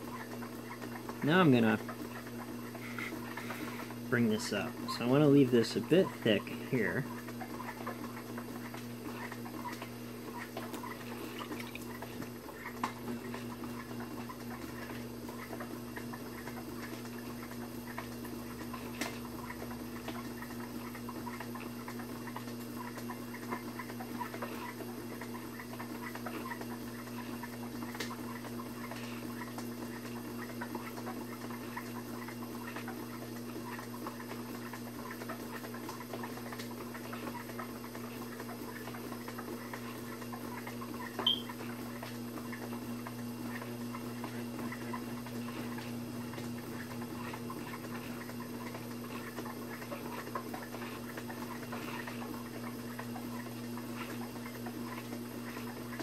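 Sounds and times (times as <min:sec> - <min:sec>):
potter's wheel humming: 0:00.0 - 0:56.0.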